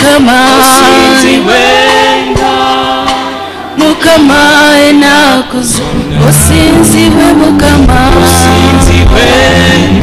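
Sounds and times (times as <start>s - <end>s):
church choir singing: 0.2s - 3.8s, 5.7s - 10.0s.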